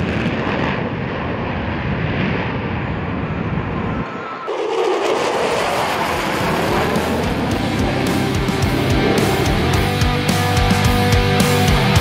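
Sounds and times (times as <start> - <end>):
jet engines flying past overhead: 0.0 - 12.0.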